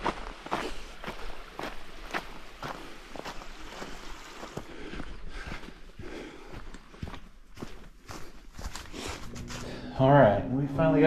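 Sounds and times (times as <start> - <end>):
footsteps on trail: 0.0 - 10.1.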